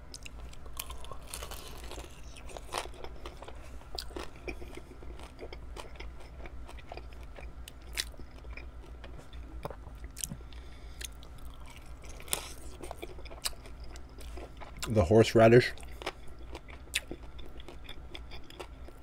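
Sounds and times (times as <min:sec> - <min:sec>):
crunchy biting and chewing: 0:00.1 - 0:15.0, 0:15.7 - 0:19.0.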